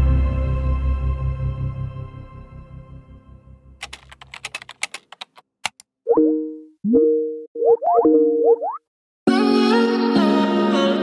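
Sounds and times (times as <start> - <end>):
computer keyboard typing: 3.8 - 5.8.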